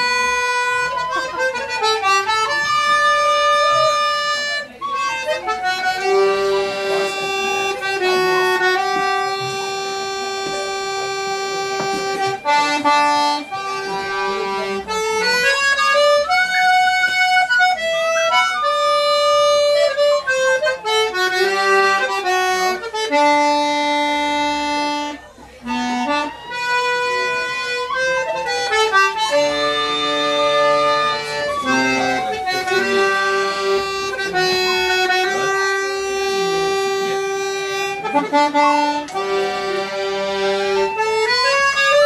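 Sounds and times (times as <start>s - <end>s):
lower-pitched instrument: 0.0s - 42.0s
tin whistle playing: 26.1s - 34.2s.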